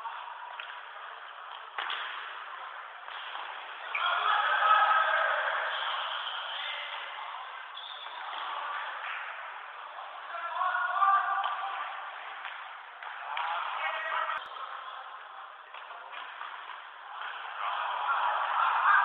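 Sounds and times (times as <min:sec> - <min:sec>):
voices calling out in a hall: 0:00.0 - 0:19.0.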